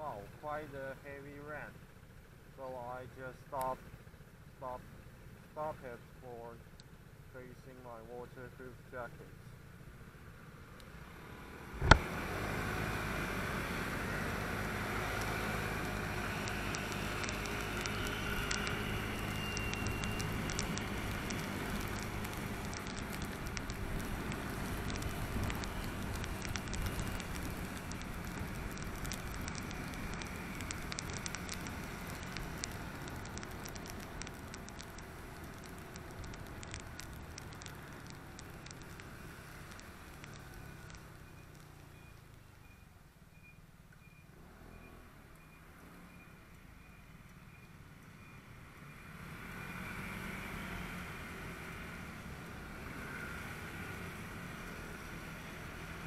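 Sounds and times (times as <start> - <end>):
road and wind noise: 0.0 - 56.0
motorbike engine hum: 9.4 - 42.6
rain and spray patter: 11.7 - 42.5, 49.5 - 56.0.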